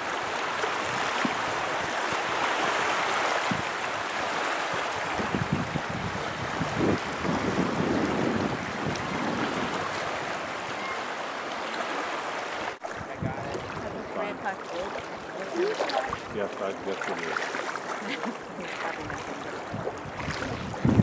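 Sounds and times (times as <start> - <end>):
wind buffeting microphone: 3.4 - 11.0, 12.8 - 17.2, 18.0 - 21.0
small waves lapping on gravel: 8.8 - 21.0.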